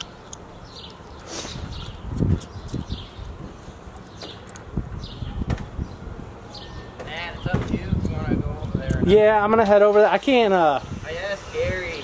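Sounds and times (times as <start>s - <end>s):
birds chirping: 0.0s - 12.0s
low thumps and rumble: 4.7s - 6.0s, 7.0s - 9.1s.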